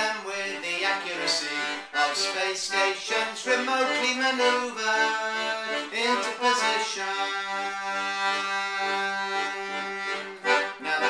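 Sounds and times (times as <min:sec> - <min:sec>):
piano accordion playing chords: 0:00.0 - 0:11.0.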